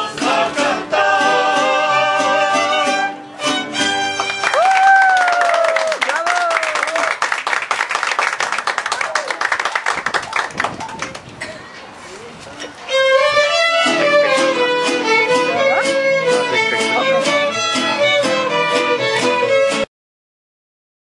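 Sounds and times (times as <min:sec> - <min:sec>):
mariachi band with violins: 0:00.0 - 0:05.2, 0:09.9 - 0:19.9
small crowd clapping: 0:03.9 - 0:11.4
voices: 0:08.9 - 0:19.8.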